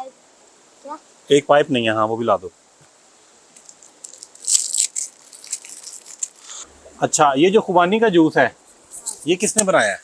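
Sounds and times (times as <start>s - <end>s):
juice carton packaging crinkling: 3.6s - 6.6s.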